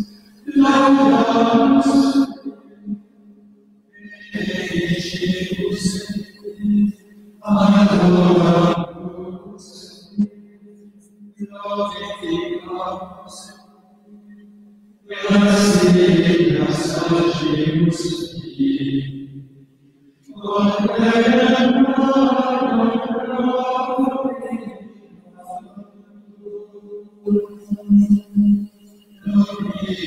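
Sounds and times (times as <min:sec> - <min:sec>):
person chanting: 0:00.0 - 0:02.5, 0:04.0 - 0:10.1, 0:11.4 - 0:13.6, 0:15.1 - 0:19.2, 0:20.3 - 0:30.0
person chanting a held note: 0:00.4 - 0:02.4, 0:15.1 - 0:19.2.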